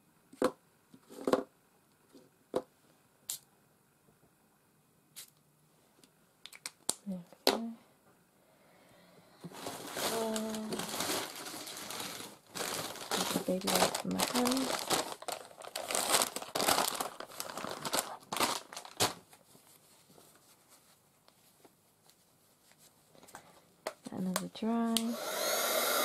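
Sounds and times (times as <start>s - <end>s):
plastic bag crinkling: 9.4s - 19.5s.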